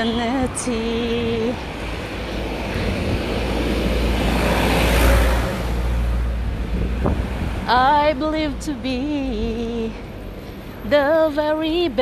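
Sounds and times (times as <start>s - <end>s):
wind rumbling on microphone: 0.0s - 10.0s
road traffic: 0.0s - 12.0s.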